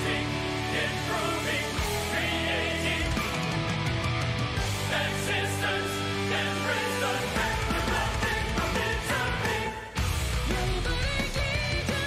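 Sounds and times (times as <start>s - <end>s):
distorted electric guitars: 0.0s - 12.0s
symphonic metal song: 0.0s - 12.0s.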